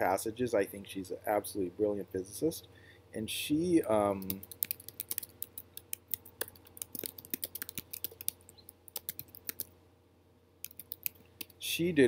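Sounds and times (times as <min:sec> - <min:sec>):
typing on computer keyboard: 0:04.2 - 0:09.7, 0:10.6 - 0:11.6.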